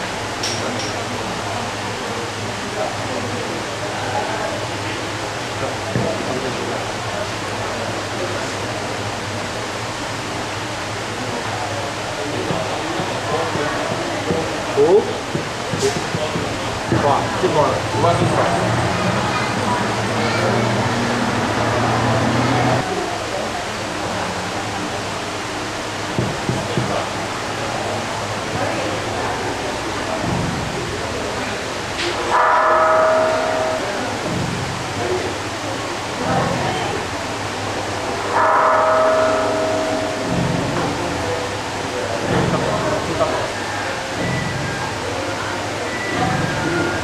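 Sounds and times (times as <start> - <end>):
murmur of crowd talking: 0.0 - 47.0.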